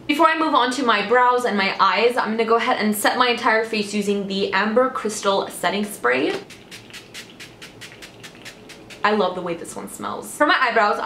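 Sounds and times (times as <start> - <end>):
spray bottle spritzing: 6.3 - 9.2.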